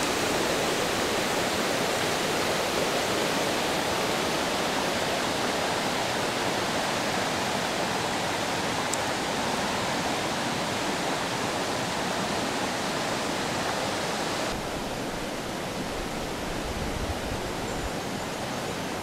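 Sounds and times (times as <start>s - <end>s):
river rushing over rocks: 0.0s - 19.0s.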